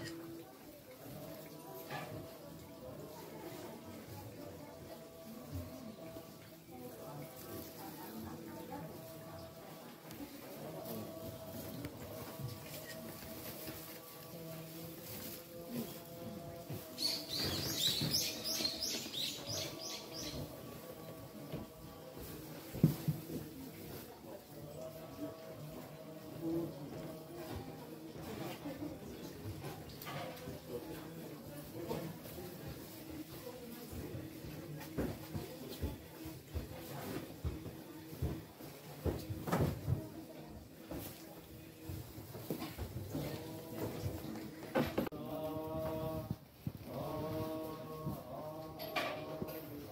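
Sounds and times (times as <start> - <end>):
faint background noise: 0.0 - 49.9
songbird singing: 16.8 - 20.6.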